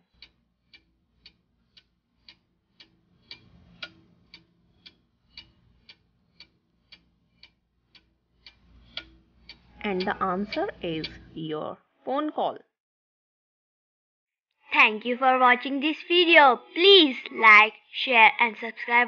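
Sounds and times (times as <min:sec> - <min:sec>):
clock ticking: 0:00.0 - 0:11.6, 0:14.8 - 0:19.0
faint low background: 0:00.0 - 0:12.8, 0:14.6 - 0:19.0.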